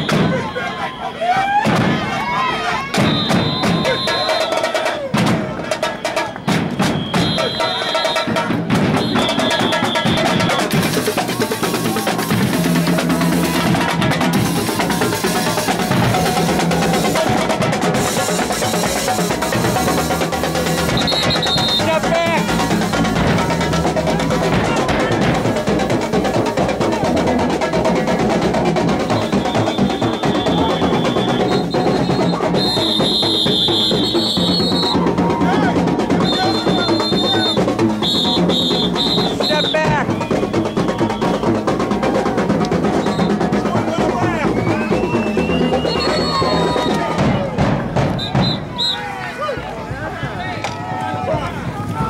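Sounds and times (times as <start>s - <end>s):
crowd voices: 0.0s - 52.0s
marching drumline playing: 0.0s - 52.0s
long high whistle blasts: 29.1s - 35.0s.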